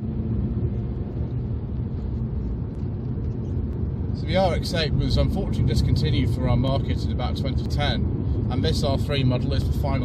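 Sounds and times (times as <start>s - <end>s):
car engine rumble in cabin: 0.0s - 10.0s
tyre and road noise: 0.0s - 10.0s.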